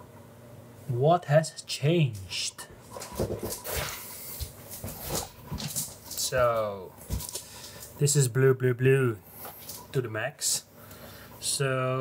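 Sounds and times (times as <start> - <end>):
rustling: 2.8 - 8.0.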